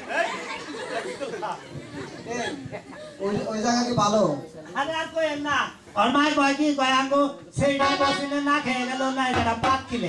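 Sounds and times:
several voices chattering: 0.0s - 6.0s.

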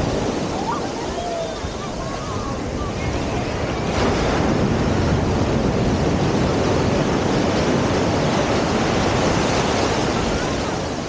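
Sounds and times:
waves breaking and foaming: 0.0s - 11.0s.

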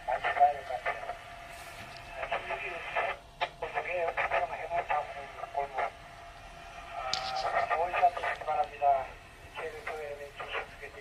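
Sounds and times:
voice over radio speaker: 0.0s - 1.2s, 2.0s - 6.0s, 6.8s - 11.0s.

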